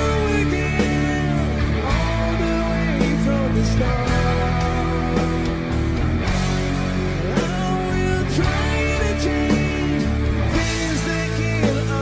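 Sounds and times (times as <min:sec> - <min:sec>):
lead guitar bending notes: 0:00.0 - 0:12.0
rock ballad music: 0:00.0 - 0:12.0.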